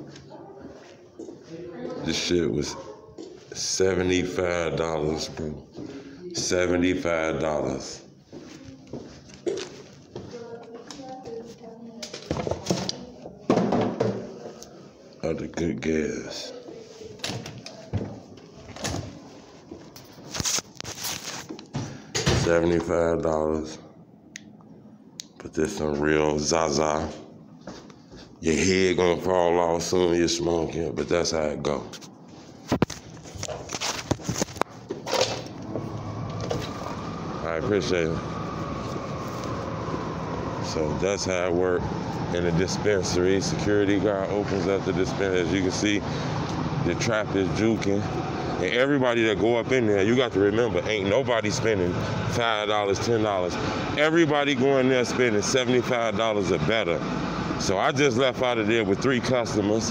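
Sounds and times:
indistinct talking: 0.0 - 19.8, 35.4 - 59.9
street background: 32.7 - 59.9.

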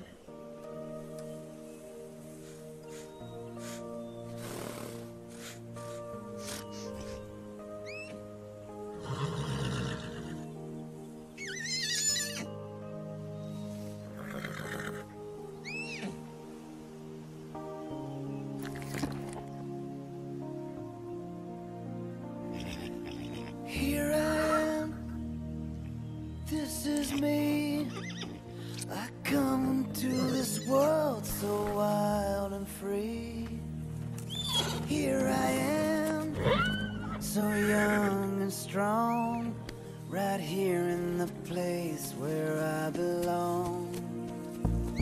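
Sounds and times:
instrumental song backing: 0.0 - 45.0
orchestral film score: 0.0 - 45.0
foal whinnying: 7.8 - 8.2, 11.4 - 12.5, 14.2 - 16.2, 30.1 - 30.9, 34.3 - 34.9, 36.3 - 37.2
foal's high wavering whinny: 11.4 - 12.5, 36.4 - 37.2.

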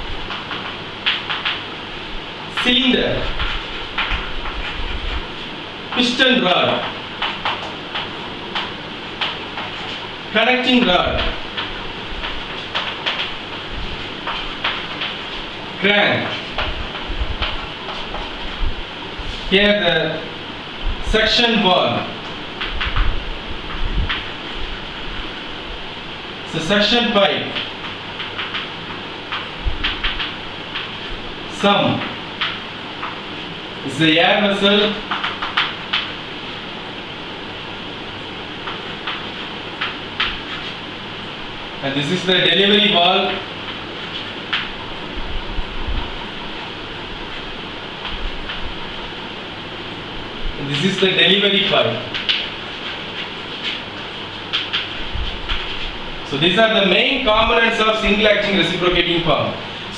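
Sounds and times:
background hiss: 0.0 - 59.9
chalk tapping and scratching: 2.6 - 6.1, 6.8 - 10.0, 11.2 - 15.4, 16.2 - 18.5.

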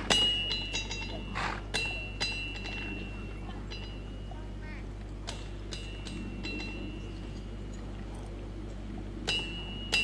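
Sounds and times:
metallic strikes ringing: 9.2 - 10.0.

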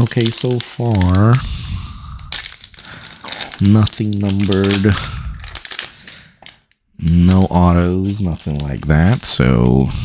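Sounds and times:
foil wrapper crinkling: 0.0 - 9.8.

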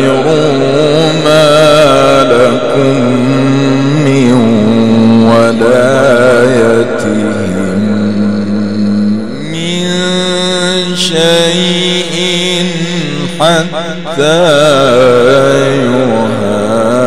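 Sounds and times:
man chanting through a microphone: 0.0 - 17.0.

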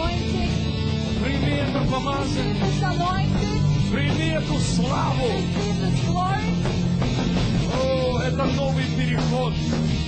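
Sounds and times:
rock worship band music: 0.0 - 10.0
steady low bass notes: 0.0 - 10.0.

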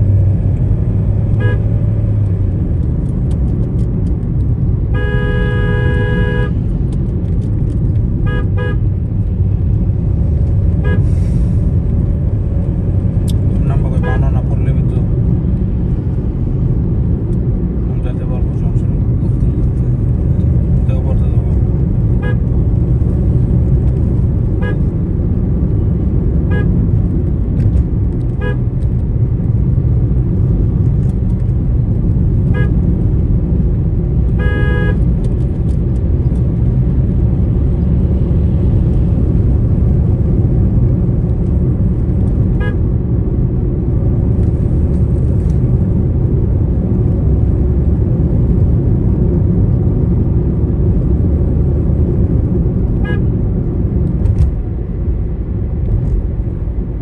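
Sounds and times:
road and engine rumble in car: 0.0 - 57.0
faint horn toots from traffic: 1.3 - 1.8, 4.9 - 6.7, 8.2 - 8.9, 10.7 - 11.4, 13.6 - 14.6, 22.1 - 22.6, 24.5 - 24.9, 26.4 - 26.8, 28.3 - 28.7, 32.4 - 32.8, 34.3 - 35.1, 42.5 - 42.9, 52.9 - 53.4
vehicle horn held: 5.0 - 6.6, 34.4 - 35.0.

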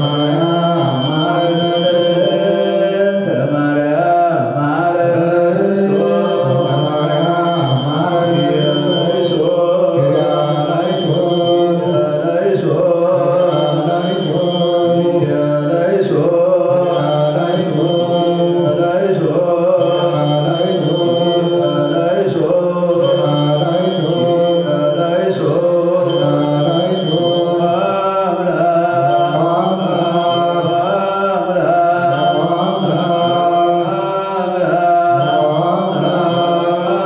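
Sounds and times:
high ringing tone: 0.0 - 3.3, 5.7 - 12.5, 13.2 - 15.5, 16.8 - 19.1, 19.7 - 37.0
men chanting: 0.0 - 37.0.

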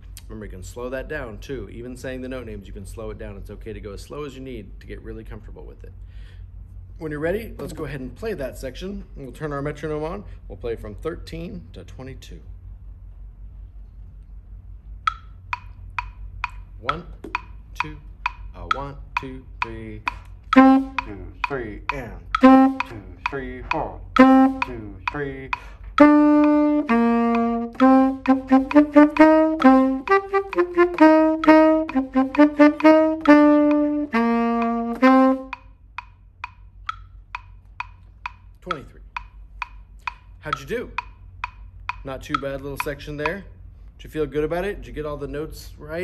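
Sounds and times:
metronome clicking: 14.9 - 43.5
tenor saxophone playing: 20.4 - 35.8.

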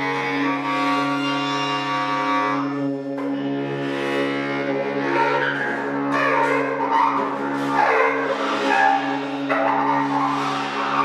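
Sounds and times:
steady low drone: 0.0 - 11.0
cymbal scraping on snare drum: 6.2 - 11.0.

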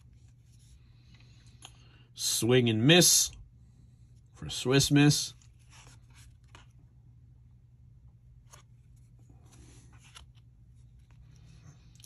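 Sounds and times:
low steady hum: 0.0 - 12.0
trading cards rustling and sliding: 4.9 - 6.9, 8.3 - 12.0.

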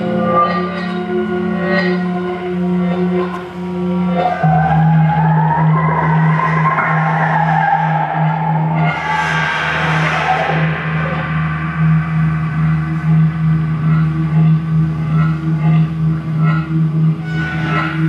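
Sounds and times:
low drone: 0.0 - 18.0
rough scraping tone: 5.6 - 15.3.

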